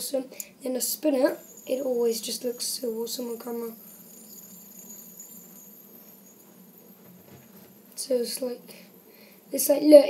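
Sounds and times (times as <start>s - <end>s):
fidget spinner whirring: 0.9s - 8.4s.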